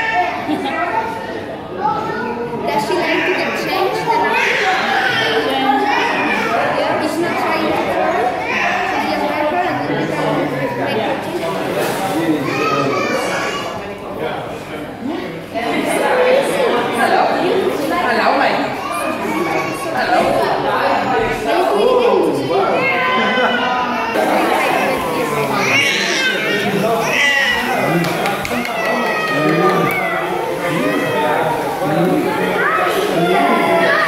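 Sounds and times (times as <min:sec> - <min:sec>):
adults and children talking: 0:00.0 - 0:34.0
infant crying: 0:23.1 - 0:31.6.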